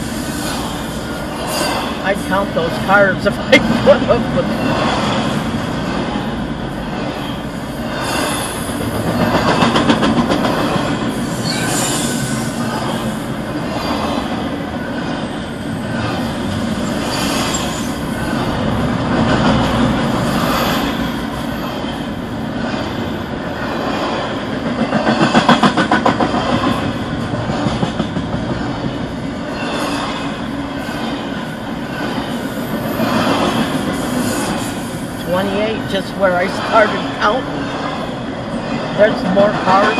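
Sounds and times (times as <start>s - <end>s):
freight train wheels rumbling: 0.0s - 39.9s
high wheel squeal: 11.2s - 13.0s, 16.8s - 18.1s.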